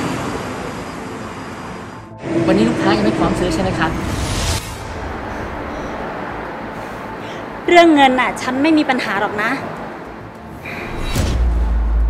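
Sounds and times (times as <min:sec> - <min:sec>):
distant traffic: 0:00.0 - 0:12.0.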